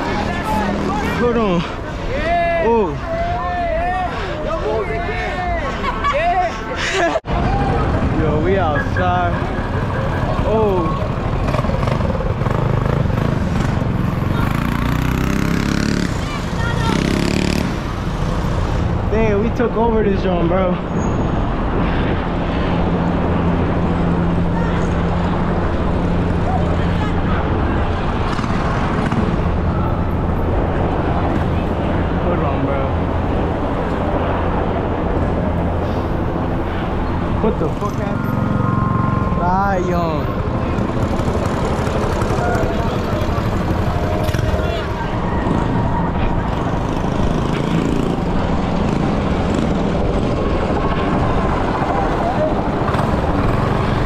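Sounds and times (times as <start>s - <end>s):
indistinct crowd voices: 0.0s - 19.0s, 20.9s - 54.0s
vehicle engines and traffic: 0.0s - 54.0s.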